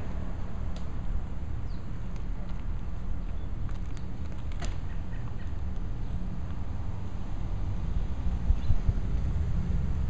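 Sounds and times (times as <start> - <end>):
wind buffeting microphone: 7.8 - 10.0.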